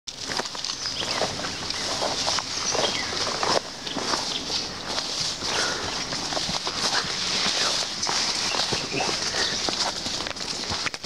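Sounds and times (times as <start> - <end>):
footsteps through undergrowth: 0.1 - 11.0
leaves and twigs rustling: 0.1 - 11.0.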